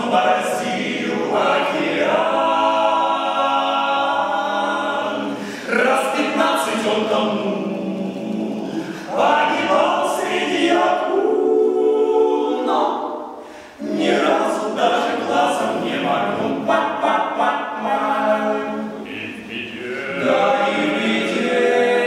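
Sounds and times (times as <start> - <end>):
male a cappella harmony singing: 0.0 - 22.0.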